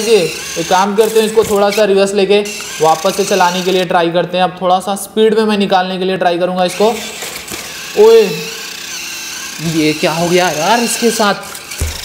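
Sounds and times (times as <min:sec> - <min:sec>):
toy electric motor whirring: 0:00.0 - 0:04.0, 0:06.7 - 0:12.0.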